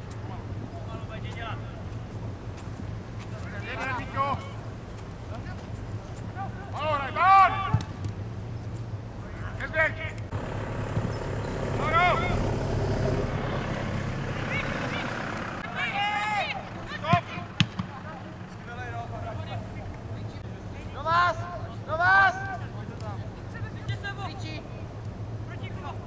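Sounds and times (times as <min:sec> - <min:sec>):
football players shouting: 0:06.3 - 0:08.0, 0:09.8 - 0:19.8
broad rushing noise: 0:10.3 - 0:20.5
sharp knocks: 0:10.9 - 0:11.8.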